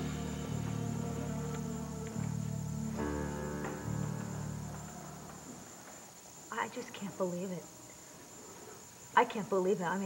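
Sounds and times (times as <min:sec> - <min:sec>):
low sustained background music: 0:00.0 - 0:06.2
faint high-pitched whine: 0:00.0 - 0:10.0.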